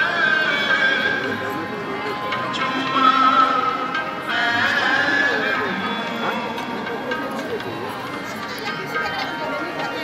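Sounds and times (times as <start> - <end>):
people talking: 0.0 - 10.0
devotional hymn singing with music: 2.3 - 6.7.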